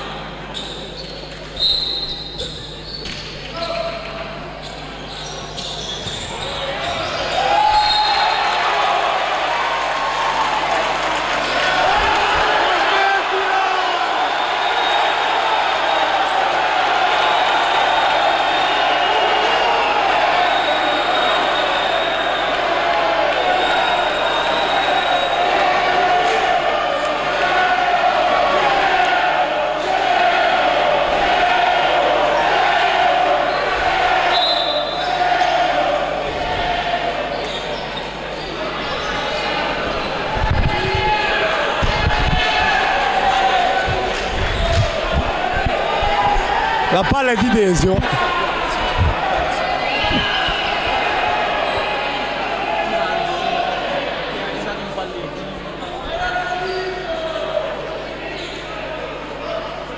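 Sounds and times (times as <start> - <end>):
crowd chatter and shouting: 0.0 - 59.9.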